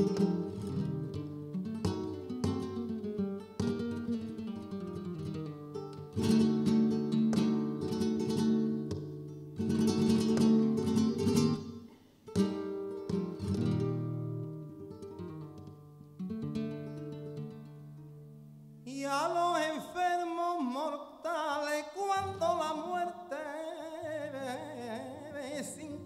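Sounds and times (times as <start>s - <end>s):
guitar picked notes ringing: 0.0s - 18.8s
flamenco guitar strummed chords: 0.0s - 26.0s.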